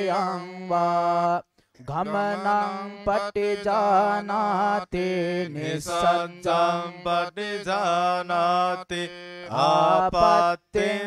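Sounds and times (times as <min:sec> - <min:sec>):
man chanting scripture: 0:00.0 - 0:11.0.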